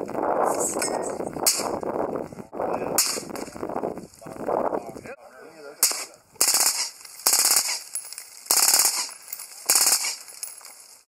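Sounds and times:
suppressed rifle bursts: 5.8s - 10.2s.

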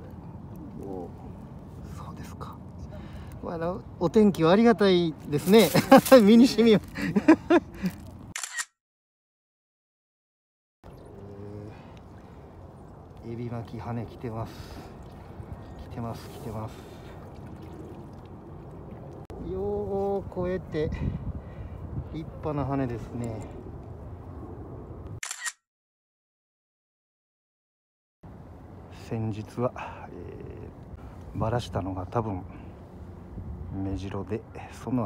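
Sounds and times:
outdoor background noise: 0.0s - 8.7s, 10.8s - 25.6s, 28.2s - 35.0s
person laughing: 5.6s - 8.0s
camera shutter click: 8.4s - 8.7s, 25.2s - 25.6s.

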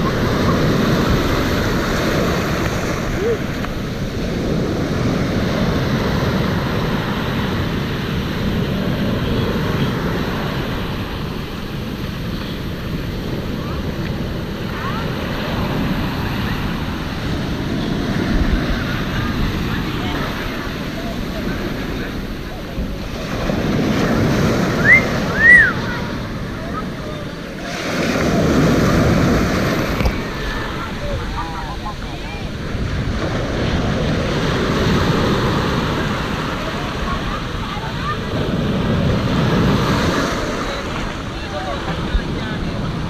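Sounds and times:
surf breaking on beach: 0.0s - 43.0s
wind rumbling on microphone: 0.0s - 43.0s.

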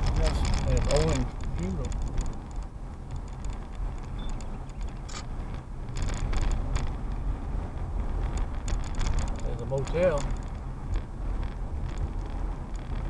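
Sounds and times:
car engine and tyre rumble: 0.0s - 13.0s
light clicks and rattles: 0.0s - 13.0s.

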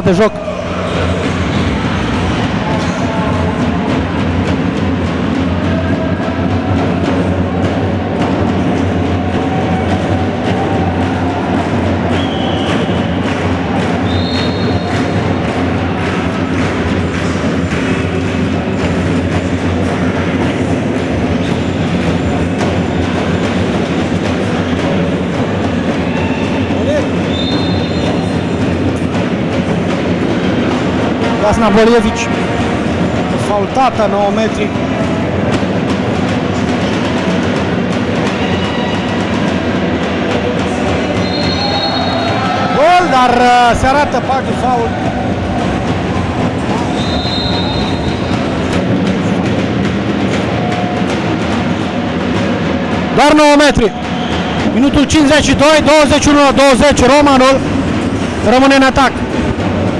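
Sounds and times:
crowd din in echoing hall: 0.0s - 59.9s
high whistle blast: 12.0s - 15.2s, 26.1s - 28.4s, 41.2s - 43.0s, 46.8s - 48.4s.

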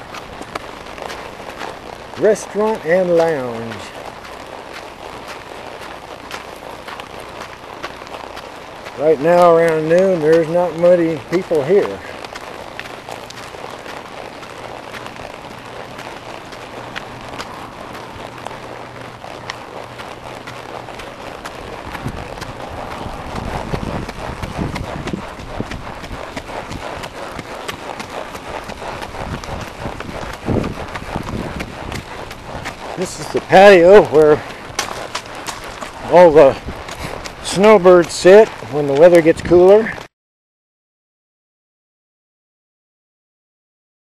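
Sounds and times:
horse hooves on gravel: 0.0s - 40.1s
low hum: 12.0s - 37.4s.

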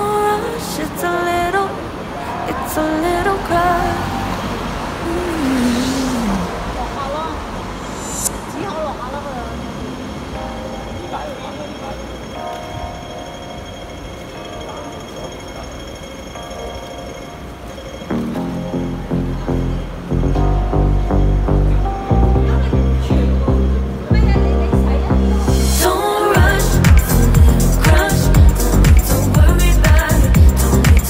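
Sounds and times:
cars passing: 0.0s - 31.0s
low traffic rumble: 0.0s - 31.0s.

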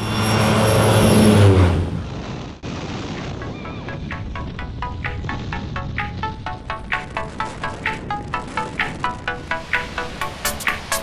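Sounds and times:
airplane passing close: 0.0s - 2.6s.

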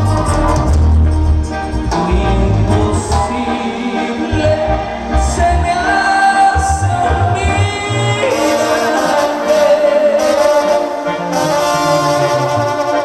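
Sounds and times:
drums: 0.0s - 3.5s
bass guitar: 0.0s - 13.0s
brass melody: 0.0s - 13.0s
guitar: 0.0s - 13.0s.

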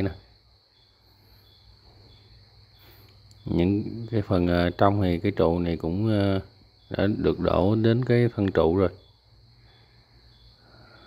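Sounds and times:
high-pitched insect chirring: 0.0s - 11.0s.

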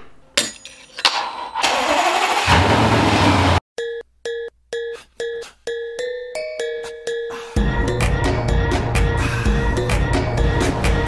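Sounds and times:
car engine starting and running: 1.6s - 3.6s.

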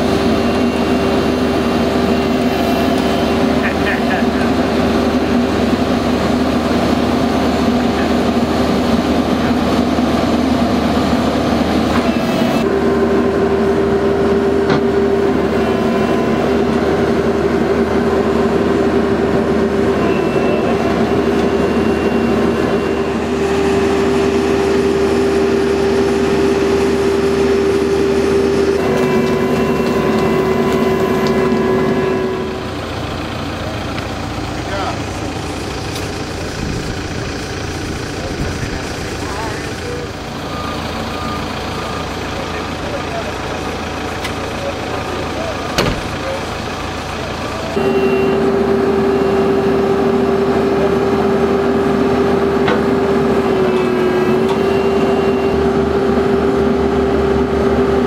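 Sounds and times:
backhoe engine whining: 0.0s - 58.0s
faint short beeps: 47.8s - 48.5s.

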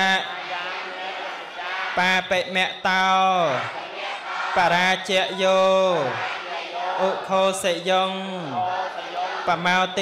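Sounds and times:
monk chanting through loudspeaker: 0.0s - 10.0s.

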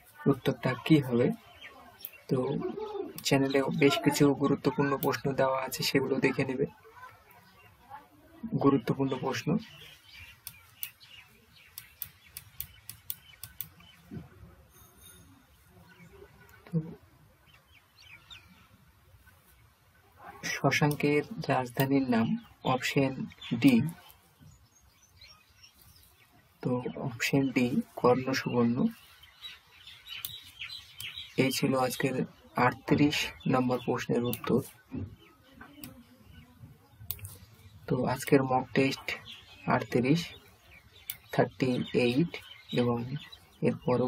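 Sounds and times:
faint bird chirps: 0.0s - 44.0s.

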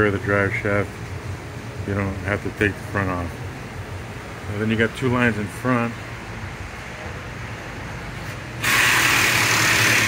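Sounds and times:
loud even hiss: 8.6s - 10.0s.

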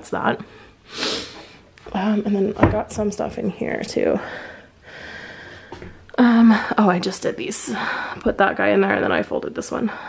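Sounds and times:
woman breathing: 0.4s - 1.7s, 4.2s - 6.9s, 7.6s - 8.3s, 9.8s - 10.0s.

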